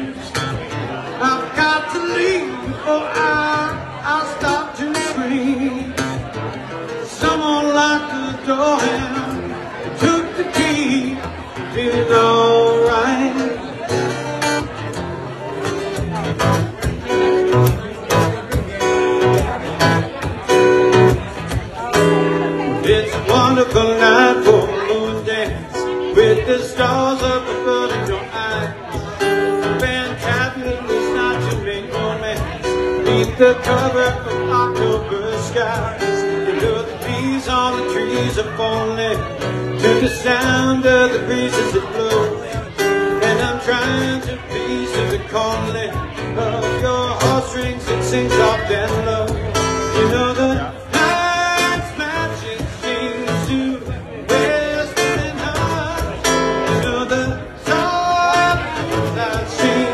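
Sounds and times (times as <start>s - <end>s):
live band playing: 0.0s - 59.9s.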